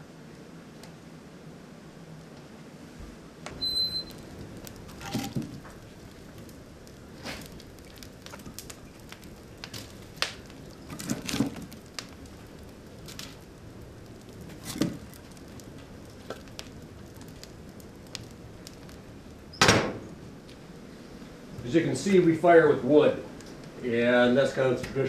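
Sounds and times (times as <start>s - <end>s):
wood fire crackling: 0.0s - 25.0s
sharp pops: 3.5s - 12.4s
firewood knocking: 3.5s - 13.4s, 14.2s - 17.5s
short high squeak: 3.6s - 4.2s.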